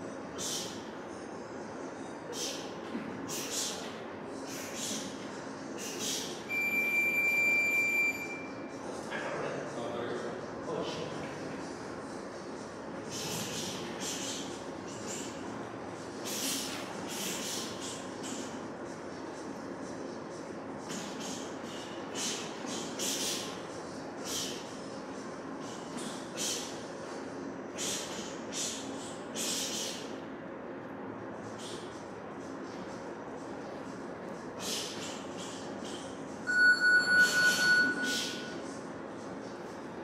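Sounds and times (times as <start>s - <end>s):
ventilation hum: 0.0s - 40.0s
electronic timer beeping rapidly: 36.5s - 38.5s.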